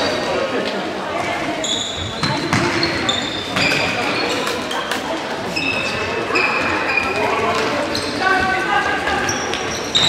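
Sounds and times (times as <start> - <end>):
shoes squeaking on hall floor: 1.1 - 10.0.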